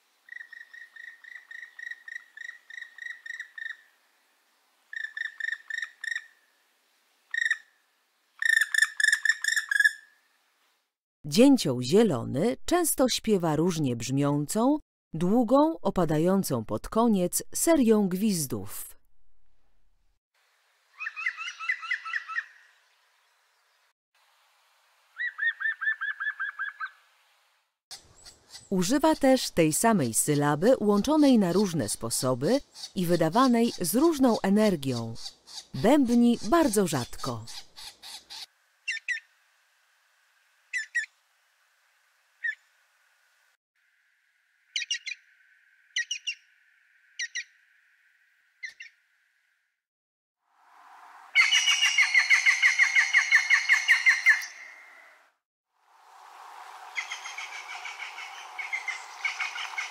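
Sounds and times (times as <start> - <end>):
woodpecker whistled call: 8.4 - 10.1, 21.0 - 22.6, 25.2 - 27.0, 44.8 - 45.2, 46.0 - 46.4, 47.2 - 47.5, 51.4 - 55.1, 56.9 - 59.9.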